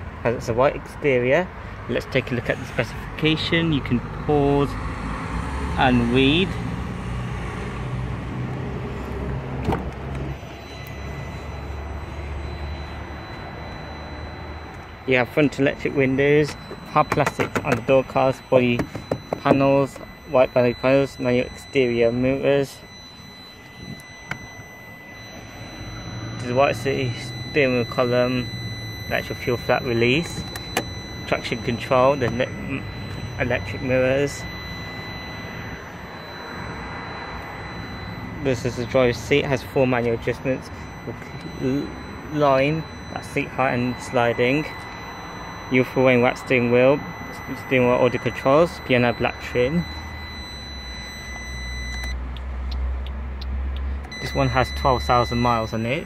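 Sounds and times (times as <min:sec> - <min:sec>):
faint high electronic whine: 0:10.1 - 0:52.2.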